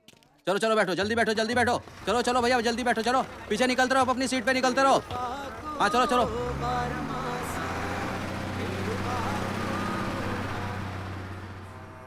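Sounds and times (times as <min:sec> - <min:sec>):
bus engine droning: 0:01.0 - 0:12.0
faint crowd voices: 0:02.2 - 0:10.8.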